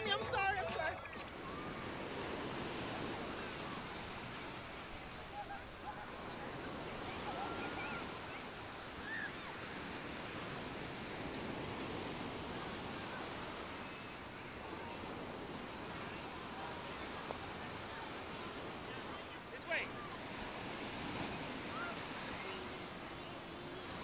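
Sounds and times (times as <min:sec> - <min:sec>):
ocean surf breaking on beach: 0:00.0 - 0:24.0.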